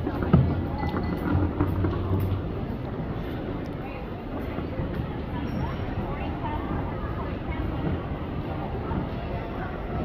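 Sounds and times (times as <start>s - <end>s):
busy airport terminal rumble: 0.0s - 10.0s.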